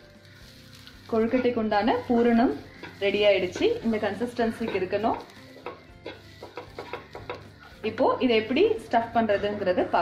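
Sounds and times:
light sizzle: 0:00.0 - 0:10.0
spatula scraping a pan: 0:00.2 - 0:10.0.

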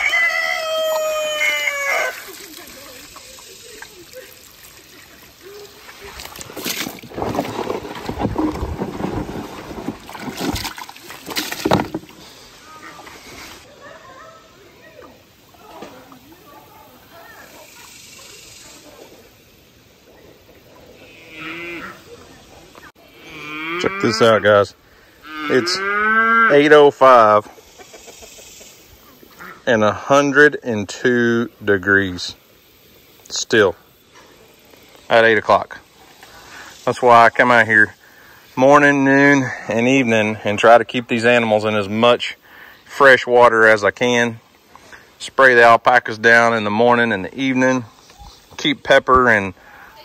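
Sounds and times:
hose water splashing into trough: 0:02.1 - 0:13.6.

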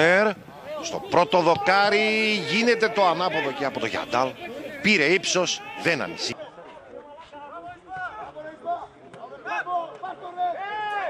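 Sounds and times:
indistinct voices calling out: 0:00.0 - 0:06.4.

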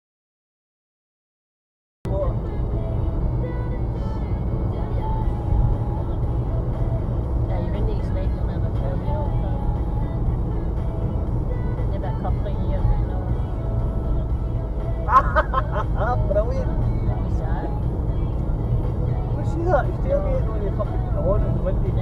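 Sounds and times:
road and engine rumble in car: 0:02.1 - 0:22.0.

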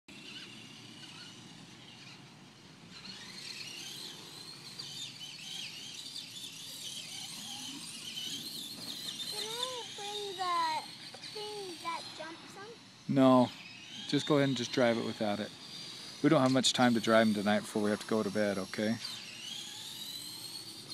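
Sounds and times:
electric motors whining: 0:00.1 - 0:20.9
outdoor noise: 0:00.1 - 0:20.9
child calling out: 0:09.3 - 0:12.8.

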